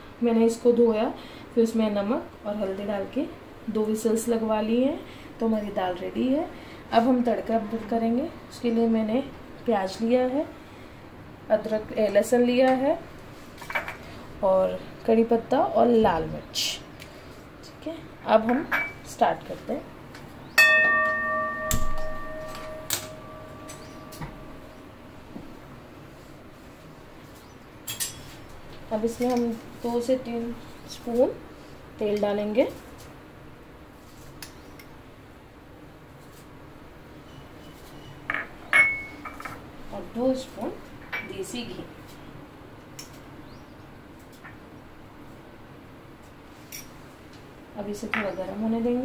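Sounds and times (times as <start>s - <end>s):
low background hiss: 0.0s - 49.0s
metal pan ringing: 20.6s - 24.8s.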